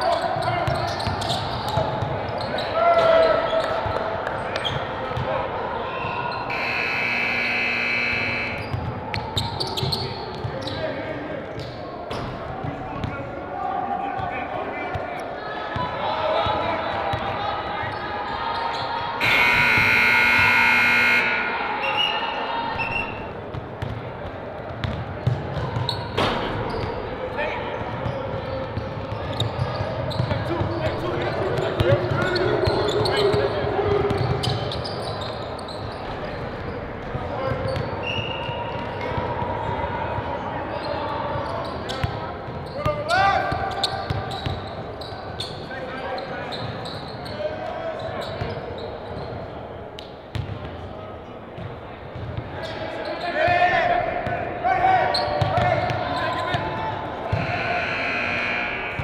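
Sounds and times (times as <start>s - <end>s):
players' voices echoing: 0.0s - 18.6s, 19.2s - 25.8s, 50.5s - 59.0s
long buzzer: 6.5s - 8.7s, 19.2s - 22.0s, 57.3s - 59.0s
basketballs bouncing on gym floor: 24.7s - 26.0s, 50.3s - 50.7s.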